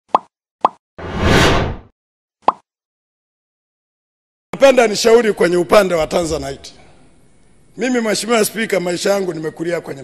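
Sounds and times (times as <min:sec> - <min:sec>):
whoosh: 0:01.0 - 0:01.9.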